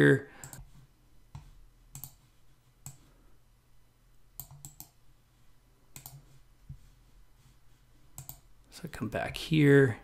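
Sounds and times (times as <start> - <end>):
computer mouse clicks: 0.4 - 0.7, 1.3 - 2.2, 2.8 - 3.0, 4.4 - 5.0, 5.9 - 6.2, 8.2 - 8.5.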